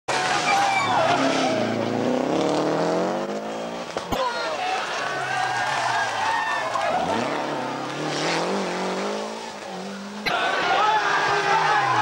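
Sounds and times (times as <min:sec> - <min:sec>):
rally car engine revving: 0:00.1 - 0:04.2, 0:04.8 - 0:12.0
tyre and road noise: 0:00.1 - 0:12.0.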